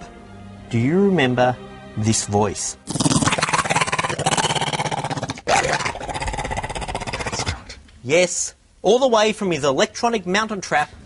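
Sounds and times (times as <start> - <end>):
man growling: 2.9 - 7.8.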